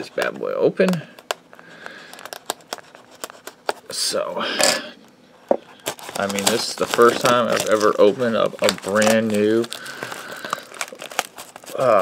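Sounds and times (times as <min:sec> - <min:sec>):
knife slitting plastic wrap: 0:05.8 - 0:12.0.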